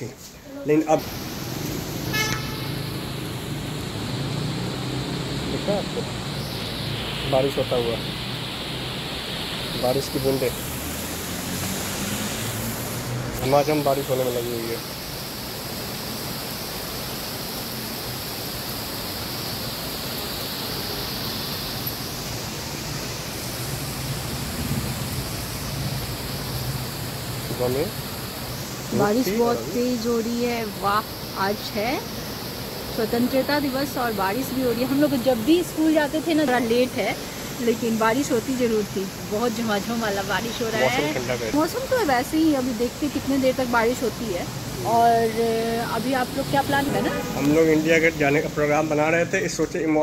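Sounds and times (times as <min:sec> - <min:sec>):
rain falling: 0:00.0 - 0:50.0
street traffic noise: 0:00.0 - 0:50.0
car horn toot: 0:02.1 - 0:02.8, 0:46.9 - 0:47.8.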